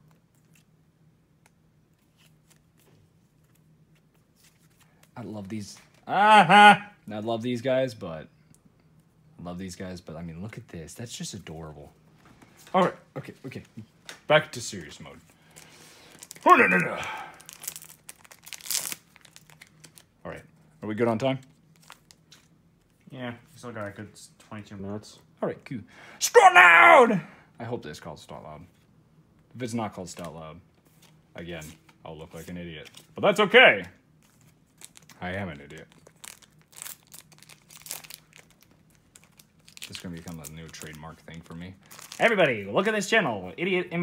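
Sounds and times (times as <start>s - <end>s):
foil wrapper crinkling: 15.4s - 20.1s, 21.6s - 22.6s, 34.2s - 42.6s.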